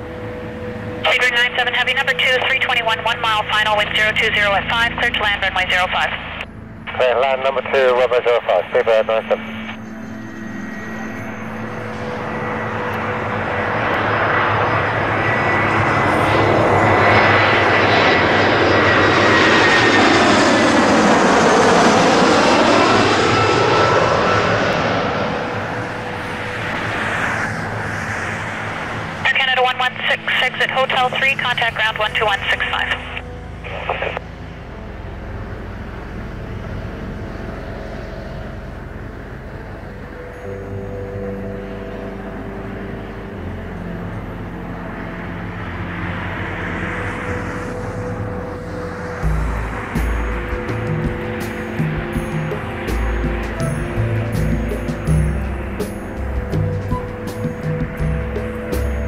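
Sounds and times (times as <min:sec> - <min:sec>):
airliner jet engines passing overhead: 0:00.0 - 0:59.0.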